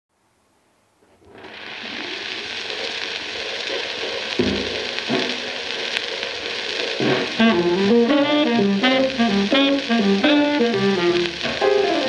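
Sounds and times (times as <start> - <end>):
record surface hiss and crackle: 0.1 - 12.0
jazz band notes: 7.0 - 12.0.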